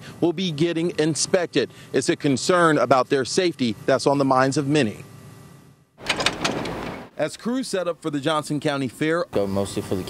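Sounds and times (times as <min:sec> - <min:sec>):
outdoor background noise: 0:00.0 - 0:10.0
sharp clicks or knocks: 0:06.0 - 0:07.1.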